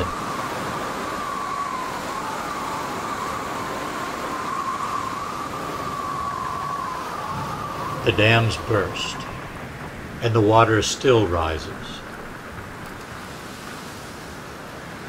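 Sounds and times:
siren wavering: 0.0 - 10.1
steady hiss: 0.0 - 15.0.

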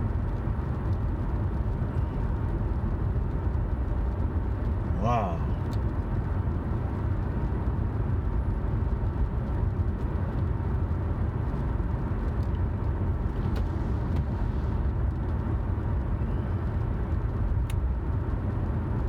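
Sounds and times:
car driving at speed: 0.0 - 19.0.

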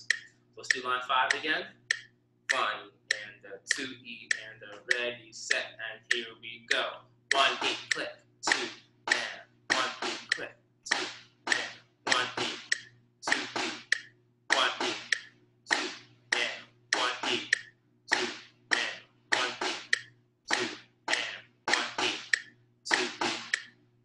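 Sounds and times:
faint steady hum: 0.0 - 24.0
snare drum strokes: 7.3 - 23.7.

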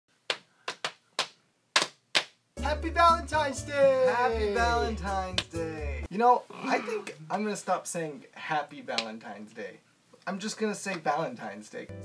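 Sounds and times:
sharp hand slaps: 0.3 - 2.4, 5.3 - 5.6.

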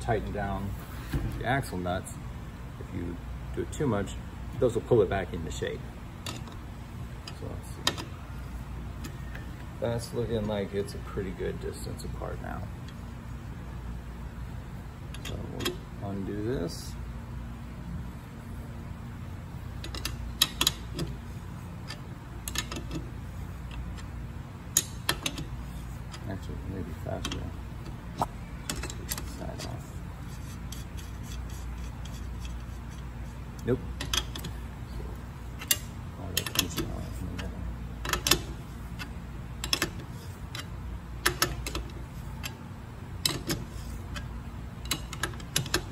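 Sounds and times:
steady low hum: 0.0 - 45.9
metal bolt and nuts clicking: 15.1 - 15.8, 19.8 - 21.2, 21.8 - 24.1, 24.7 - 26.3, 30.7 - 34.6, 35.6 - 42.6, 43.2 - 45.9.

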